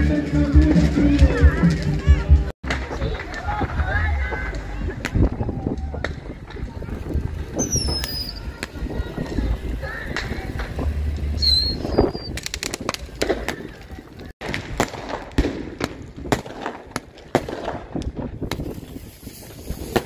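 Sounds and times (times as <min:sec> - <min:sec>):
fireworks crackling and popping: 0:00.0 - 0:20.0.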